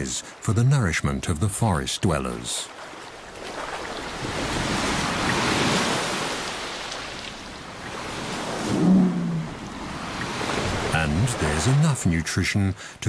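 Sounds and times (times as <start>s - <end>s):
waves washing onto rocky shore: 2.8s - 12.1s.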